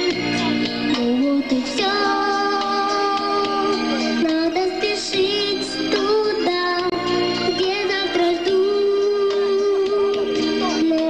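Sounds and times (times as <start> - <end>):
girl singing pop song: 0.0 - 11.0
synthesizer backing track: 0.0 - 11.0.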